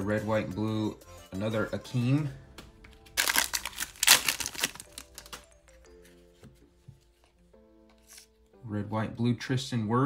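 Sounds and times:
soft background music: 0:00.0 - 0:10.0
foil wrapper crinkling: 0:03.1 - 0:05.5.

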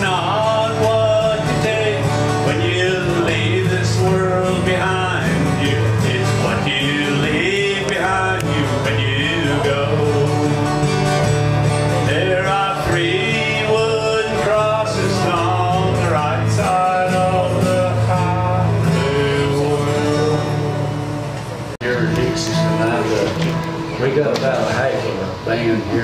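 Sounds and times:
man singing: 0:00.0 - 0:11.2, 0:11.8 - 0:23.4
acoustic guitar: 0:00.0 - 0:26.0.

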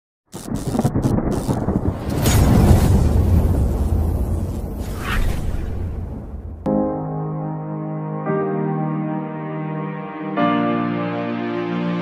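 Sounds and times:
rain hiss: 0:00.4 - 0:05.0
thunder rumble: 0:00.4 - 0:06.7.

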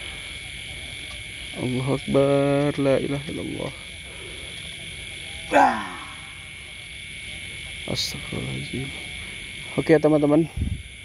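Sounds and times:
crickets and night insects chirping: 0:00.0 - 0:11.0
loud short falling cry: 0:05.5 - 0:06.3.

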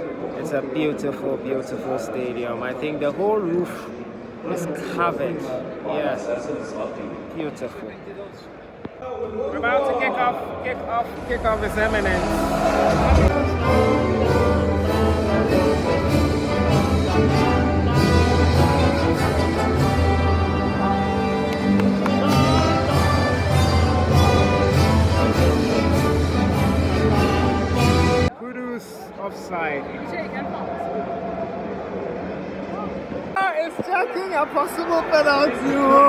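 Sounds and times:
stadium crowd din: 0:00.0 - 0:36.0
orchestral anthem over loudspeakers: 0:11.1 - 0:28.3.

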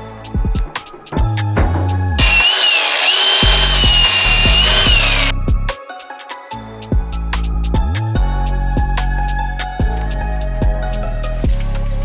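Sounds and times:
music with bass line: 0:00.0 - 0:02.8, 0:03.4 - 0:06.0, 0:06.6 - 0:12.0
power tool whining: 0:02.2 - 0:05.3.

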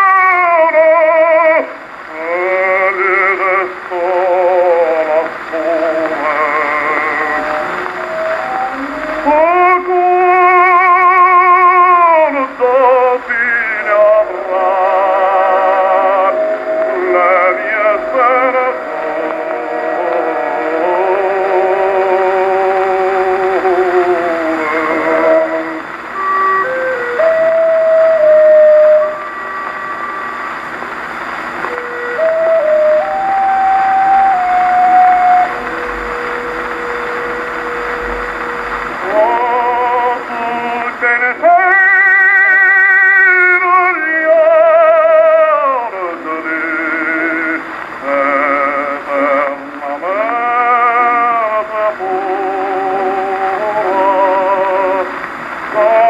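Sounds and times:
record surface hiss: 0:00.0 - 0:56.0
tenor singing with orchestra: 0:00.0 - 0:56.0.

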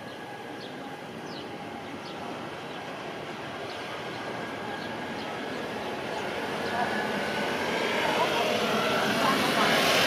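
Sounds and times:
vehicle engine and road noise: 0:00.0 - 0:10.0.

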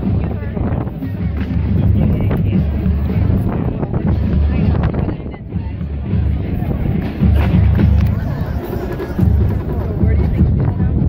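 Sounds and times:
wind rumble on microphone: 0:00.0 - 0:11.0
marching band playing: 0:05.8 - 0:10.8.

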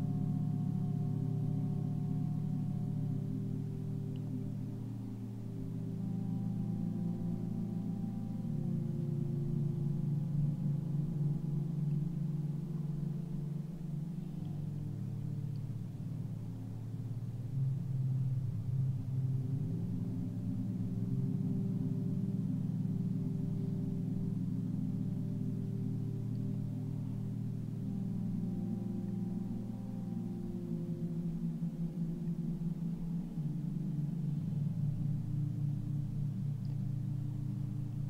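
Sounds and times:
ambient drone music: 0:00.0 - 0:38.0.

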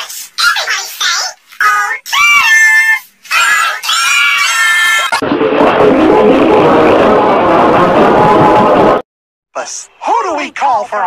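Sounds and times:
distorted cartoon voice shouting: 0:00.0 - 0:05.2.

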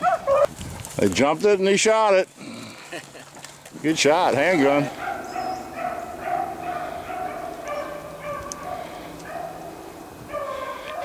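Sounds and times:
dogs baying: 0:00.0 - 0:00.5, 0:04.4 - 0:11.0.

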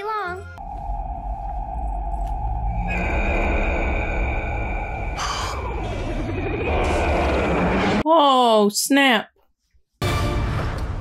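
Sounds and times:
spacecraft rumble and rushing roar: 0:00.6 - 0:08.0.

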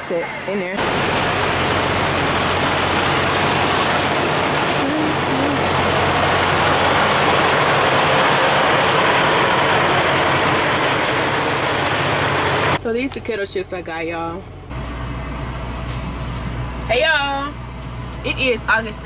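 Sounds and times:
diesel engines idling: 0:00.6 - 0:19.0.

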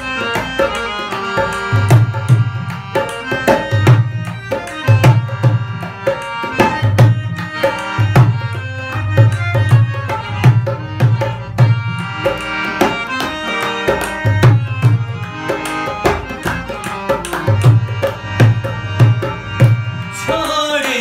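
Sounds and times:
harmonium held reed notes: 0:00.0 - 0:21.0.

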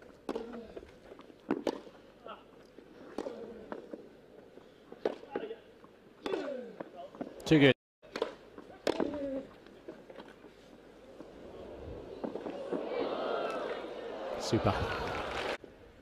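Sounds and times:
racket striking tennis ball: 0:00.3 - 0:00.6, 0:01.5 - 0:01.9, 0:08.0 - 0:09.4
crowd noise: 0:09.6 - 0:16.0.

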